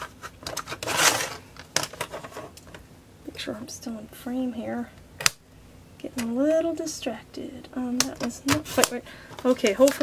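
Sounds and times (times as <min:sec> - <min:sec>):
paper scraping over plastic: 0:00.0 - 0:02.6.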